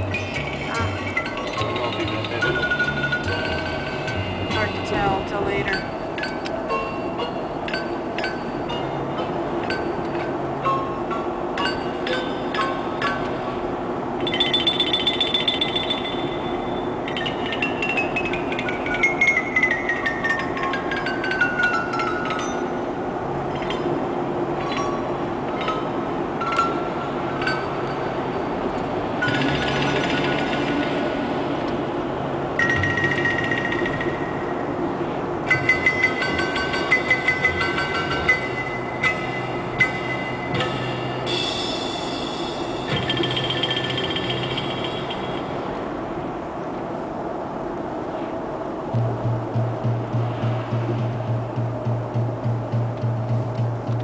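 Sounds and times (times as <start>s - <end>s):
vehicle engine and road noise: 0.0s - 54.0s.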